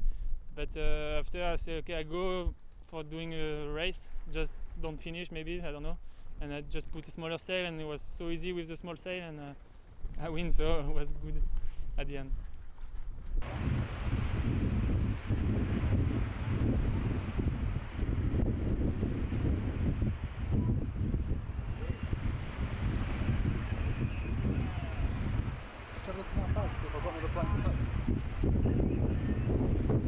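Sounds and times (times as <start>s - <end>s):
wind buffeting microphone: 9.9s - 30.0s
choppy sea: 13.4s - 30.0s.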